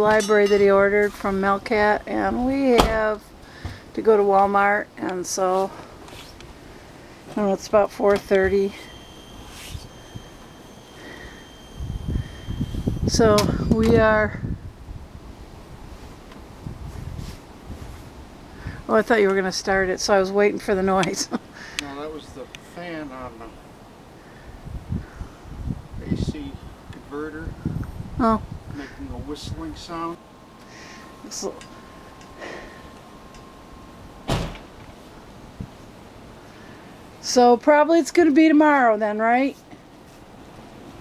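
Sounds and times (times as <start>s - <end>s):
faint steady whistle: 8.3s - 13.6s, 29.8s - 34.4s
wind rumbling on microphone: 11.1s - 18.9s, 24.3s - 30.5s, 31.2s - 36.3s
car door shutting: 34.2s - 34.9s.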